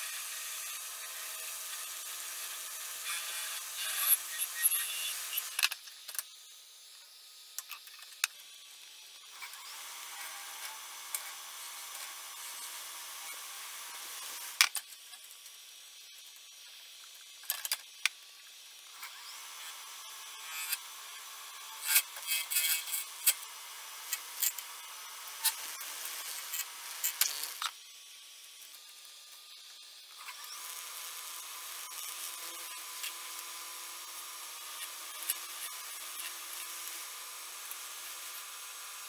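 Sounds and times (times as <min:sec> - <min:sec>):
lathe tool scraping resin: 0:00.0 - 0:05.6, 0:18.9 - 0:27.7, 0:30.2 - 0:38.7.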